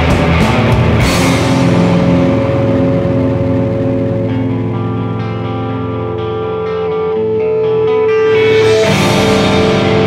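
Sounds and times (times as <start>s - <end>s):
distorted electric guitar chord: 0.0s - 10.0s
cymbal crash: 8.2s - 10.0s.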